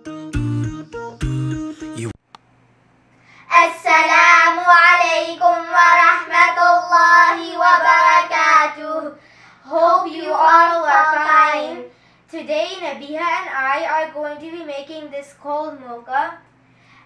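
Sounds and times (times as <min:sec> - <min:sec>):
girls singing unaccompanied: 0:03.5 - 0:11.9.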